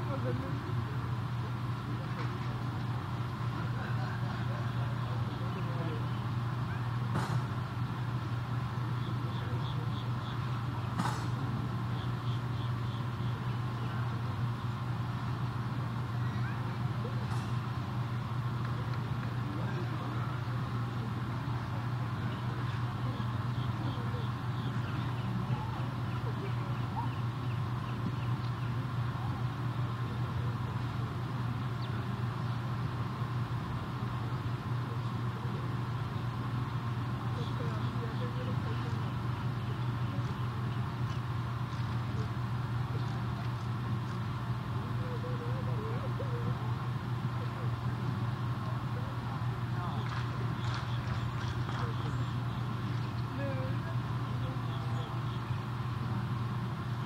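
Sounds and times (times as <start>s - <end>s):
faint background voices: 0.0s - 57.0s
steady low hum: 0.0s - 57.0s.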